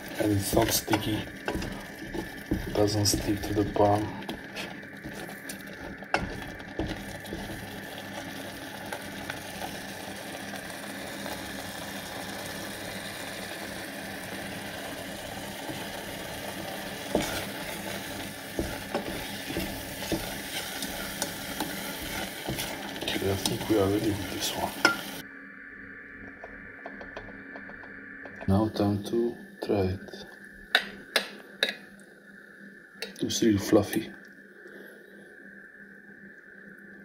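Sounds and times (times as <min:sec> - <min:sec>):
wooden spoon stirring: 0:00.0 - 0:09.9, 0:15.5 - 0:25.2
eggs sizzling in oil: 0:00.0 - 0:25.2.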